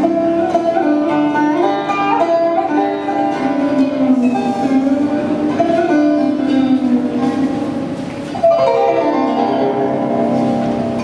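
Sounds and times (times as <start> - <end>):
zither plucked melody: 0.0 - 11.0.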